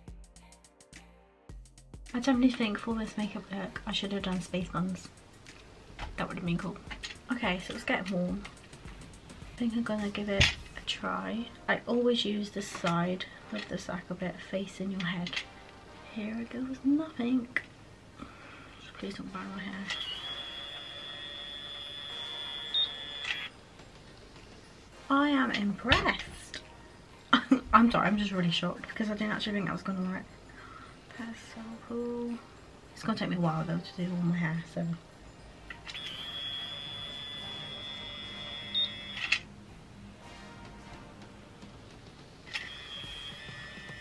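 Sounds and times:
long high-pitched beep: 0:19.9 - 0:23.5, 0:36.0 - 0:39.2, 0:42.6 - 0:43.8.

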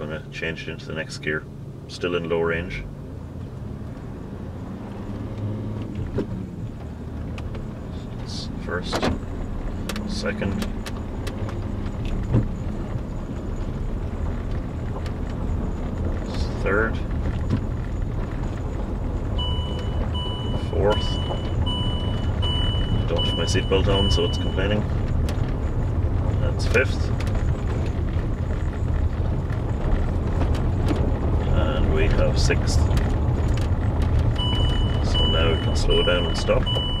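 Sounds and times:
car engine rumbling: 0:00.0 - 0:37.0.

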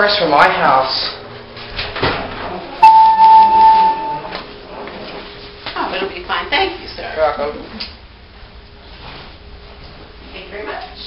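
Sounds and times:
elevator electronic beep: 0:02.8 - 0:04.4.

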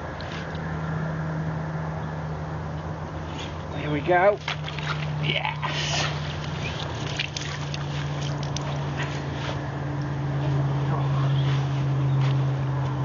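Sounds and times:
low mechanical hum: 0:00.0 - 0:13.0.

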